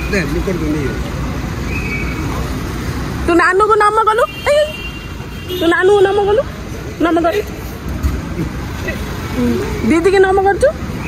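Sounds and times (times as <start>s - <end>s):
traffic rumble of cars: 0.0s - 11.0s.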